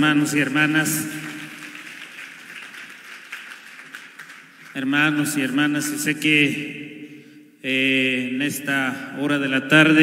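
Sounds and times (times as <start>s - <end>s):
man's amplified voice: 0.0s - 1.6s, 4.7s - 10.0s
crowd clapping: 0.0s - 5.3s.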